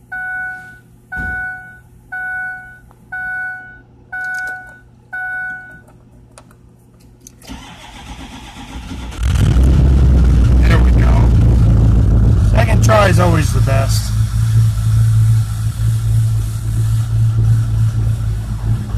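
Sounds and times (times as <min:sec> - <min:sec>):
dashboard warning chime: 0:00.1 - 0:05.9
diesel engine cranking: 0:07.4 - 0:18.9
diesel engine idling: 0:07.5 - 0:18.9.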